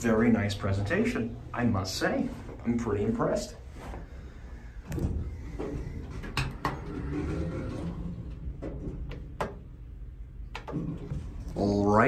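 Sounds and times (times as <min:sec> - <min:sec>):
elevator doors sliding: 0:04.8 - 0:09.8.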